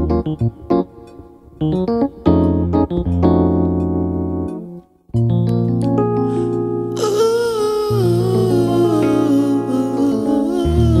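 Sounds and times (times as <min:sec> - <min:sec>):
electric piano chords: 0:00.0 - 0:11.0
wordless humming vocal: 0:07.0 - 0:11.0.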